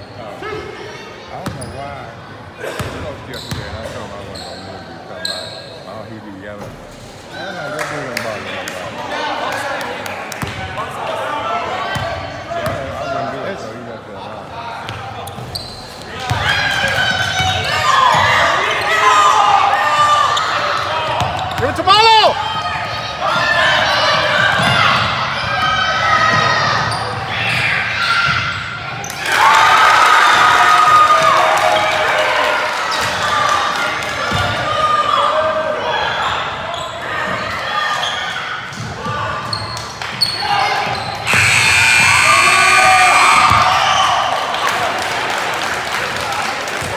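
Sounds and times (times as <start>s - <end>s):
shoe squeak: 3.3s - 5.9s, 15.2s - 16.1s, 39.4s - 41.7s
crowd cheering: 16.1s - 36.6s, 37.2s - 46.9s
players and spectators shouting: 16.1s - 45.7s.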